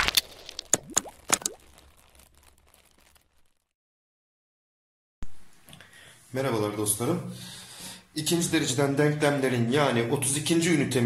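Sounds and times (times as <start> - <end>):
rising pop sound effects: 0.6 - 1.6.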